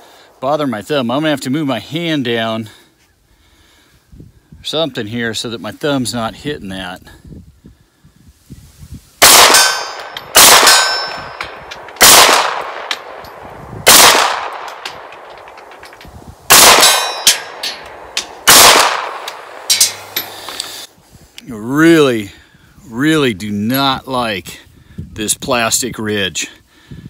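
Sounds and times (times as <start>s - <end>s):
pistol shots with echo: 9.2s - 15.6s, 16.5s - 20.0s
bullets pinging on steel: 9.3s - 20.4s.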